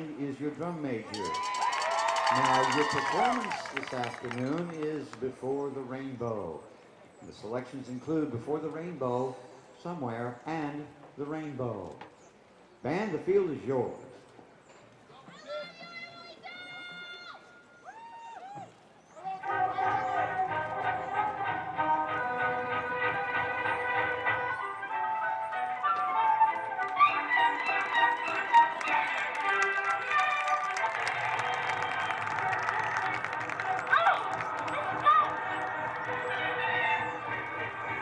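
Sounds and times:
marching band playing: 19.4s - 38.0s.

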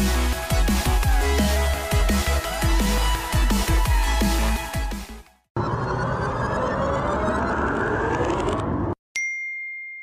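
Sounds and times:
electronic music: 0.0s - 7.7s
bell-like ding: 9.2s - 10.0s.

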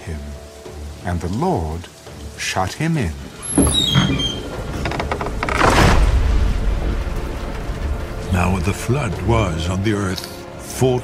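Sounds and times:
thunder rumble: 3.2s - 9.8s.

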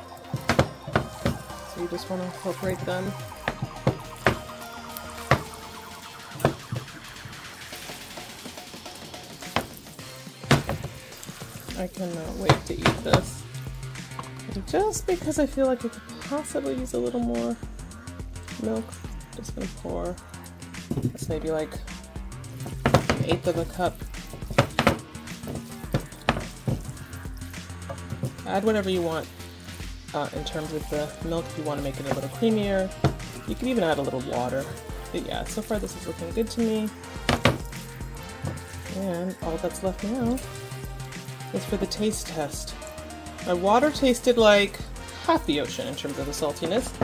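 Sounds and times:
soft background music: 0.0s - 47.0s.

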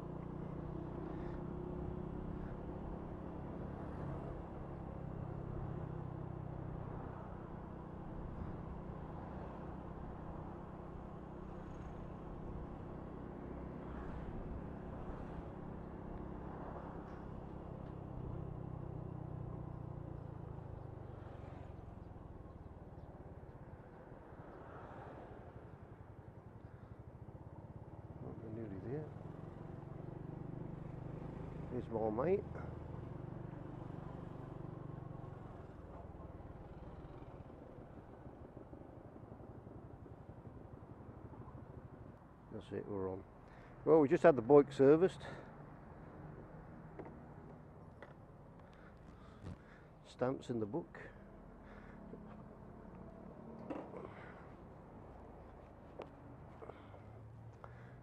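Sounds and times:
town traffic: 0.0s - 58.0s
wind and road noise: 0.0s - 58.0s.

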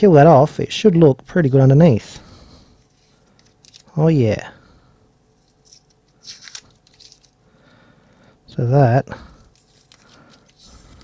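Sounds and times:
tape rustling and crackling: 2.8s - 4.0s, 5.3s - 7.4s, 9.4s - 11.0s.

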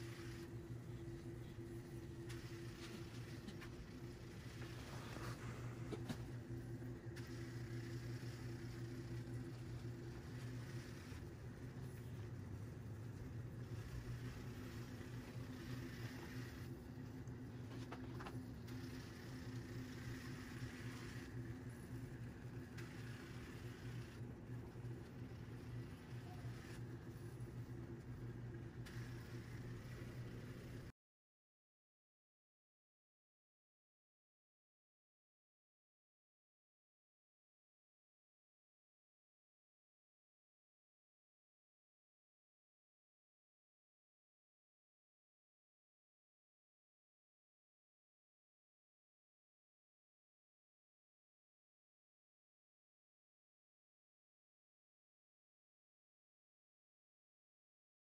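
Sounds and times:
robot vacuum motor hum: 0.0s - 30.9s
vacuum fan hiss: 0.0s - 30.9s.

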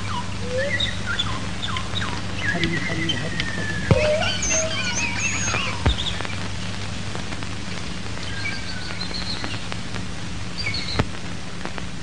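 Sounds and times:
small birds chirping: 0.0s - 11.2s
steady low hum: 0.0s - 12.0s.

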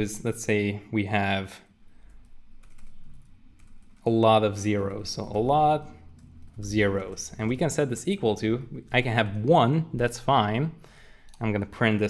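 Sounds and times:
computer keyboard typing: 2.0s - 9.5s.

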